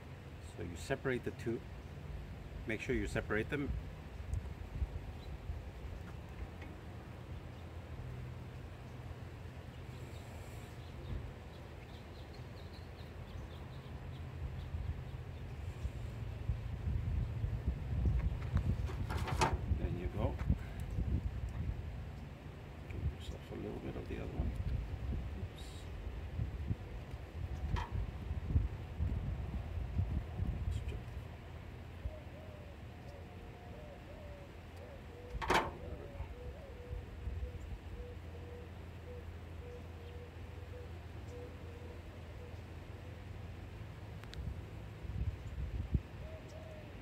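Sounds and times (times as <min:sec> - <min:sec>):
low outdoor rumble: 0:00.0 - 0:47.0
wind buffeting microphone: 0:15.7 - 0:22.2, 0:22.9 - 0:31.0, 0:44.4 - 0:46.2
bird calling: 0:32.0 - 0:43.2, 0:46.2 - 0:47.0.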